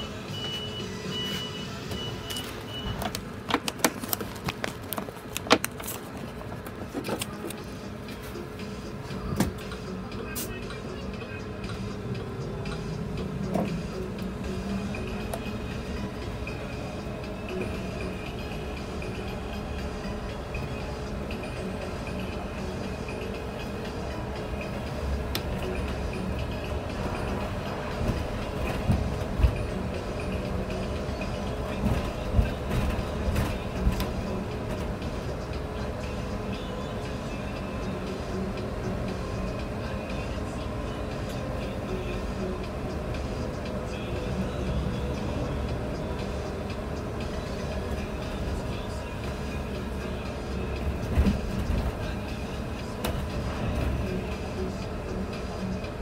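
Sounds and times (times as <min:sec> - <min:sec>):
bus engine humming: 0:00.0 - 0:56.0.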